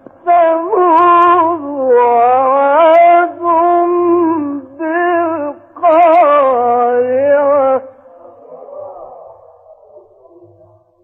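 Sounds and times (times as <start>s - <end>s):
echo of chanted recitation: 0.0s - 11.0s.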